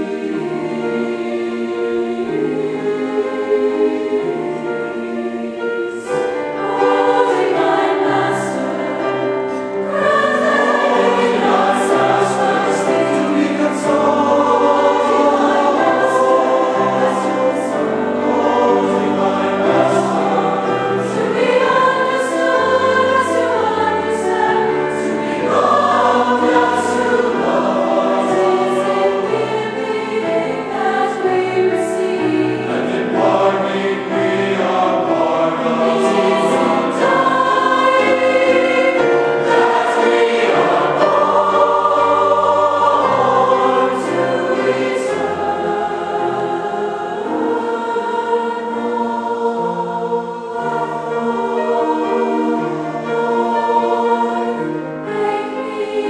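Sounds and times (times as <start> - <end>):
mixed choir singing in harmony: 0.0 - 56.0.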